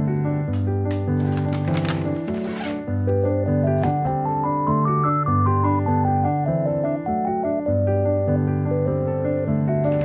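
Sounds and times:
gentle piano music: 0.0 - 10.0
paper and plastic bag rustling: 0.9 - 2.9.

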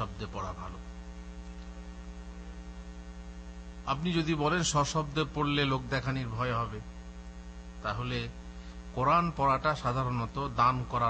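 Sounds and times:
man speaking into a microphone: 0.0 - 0.9, 3.8 - 6.9, 7.8 - 11.0
electrical mains hum: 0.0 - 11.0.

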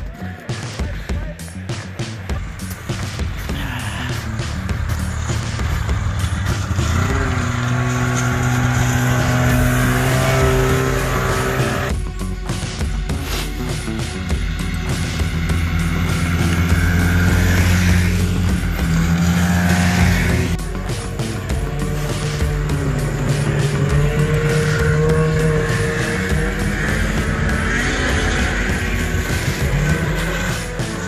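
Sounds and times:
rock music: 0.0 - 31.0
snowmobile engines passing: 0.7 - 31.0.

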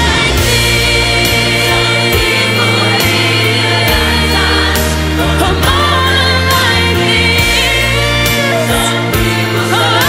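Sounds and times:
song with held sung notes: 0.0 - 10.0.

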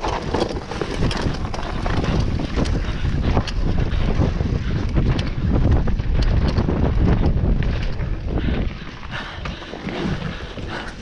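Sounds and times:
tyres rumbling on dirt: 0.0 - 8.5
bike clicks and rattles: 0.0 - 11.0
wind rushing over microphone: 0.0 - 11.0.

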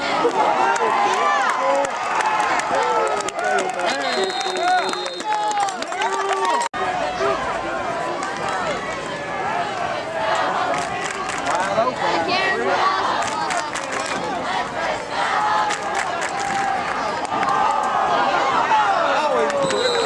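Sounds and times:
crowd shouting and cheering: 0.0 - 20.0
whistle blowing: 3.9 - 5.5, 19.6 - 20.0.

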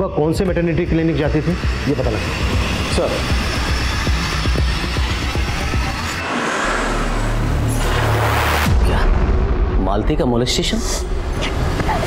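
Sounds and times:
low bass drone: 0.0 - 12.0
pulsing deep rumble: 0.2 - 12.0
whoosh: 1.0 - 10.0.

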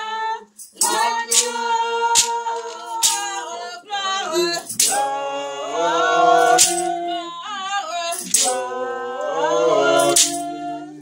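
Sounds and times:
voices singing worship song: 0.0 - 11.0
sharp percussive hit: 0.7 - 3.4, 4.7 - 5.2, 6.5 - 6.9, 8.2 - 8.7, 10.0 - 10.5.

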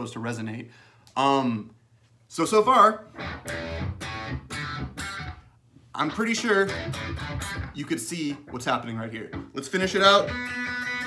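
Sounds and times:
electric guitar notes picked: 3.2 - 5.5, 6.6 - 7.8, 8.4 - 11.0.

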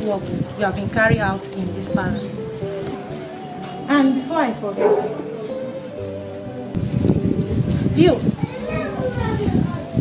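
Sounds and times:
woman talking: 0.0 - 2.4, 3.8 - 5.5, 7.9 - 8.3.

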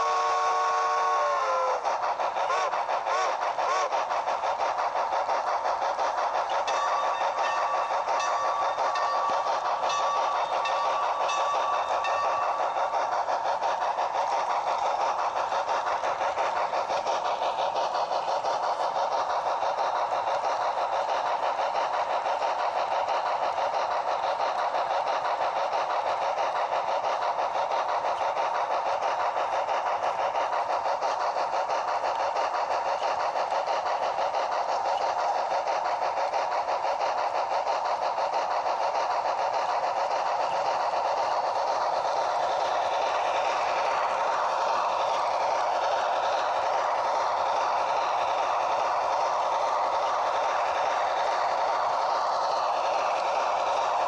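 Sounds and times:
model train rattling on track: 0.0 - 54.0.

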